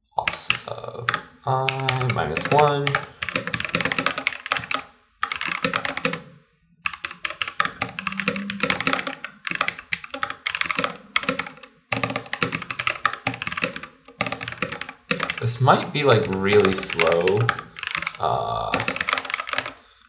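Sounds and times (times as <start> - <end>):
rapid typing on keyboard: 0.2 - 6.3, 6.9 - 19.9.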